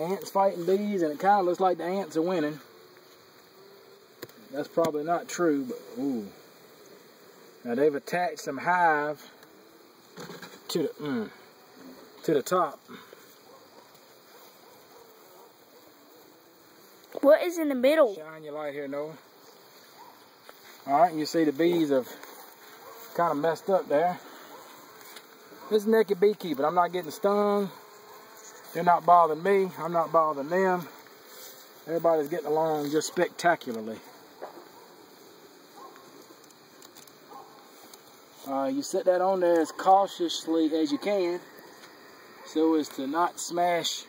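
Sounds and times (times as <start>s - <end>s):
hive box handling sounds: 0.0s - 18.0s, 19.2s - 43.8s
honeybees buzzing: 0.0s - 44.0s
steady hiss: 0.0s - 44.0s.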